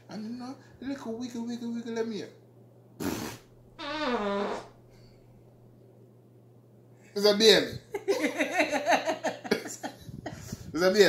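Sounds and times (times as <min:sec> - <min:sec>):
fart sound: 0:03.0 - 0:04.8.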